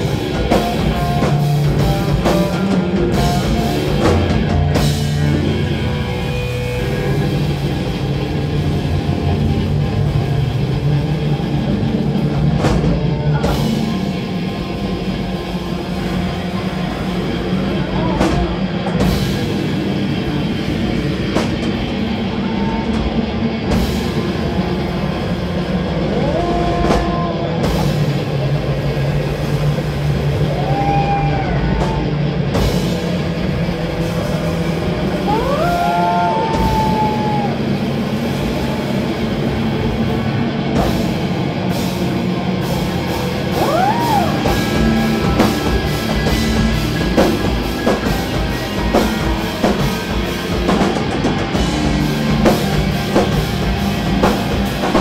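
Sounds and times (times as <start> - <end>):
bass guitar: 0.0 - 55.0
drum kit: 0.0 - 55.0
electric guitar: 0.0 - 55.0
high sliding guitar tone: 32.2 - 55.0.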